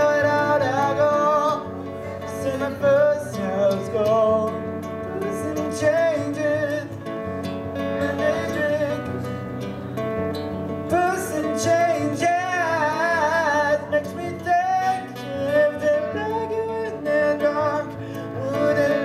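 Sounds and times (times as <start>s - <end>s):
man singing into a microphone: 0.0s - 9.4s, 10.9s - 19.0s
acoustic guitar strumming: 0.0s - 19.0s.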